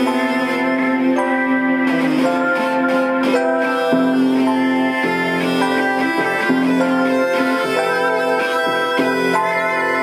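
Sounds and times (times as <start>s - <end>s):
instrumental music sustained notes: 0.0s - 10.0s.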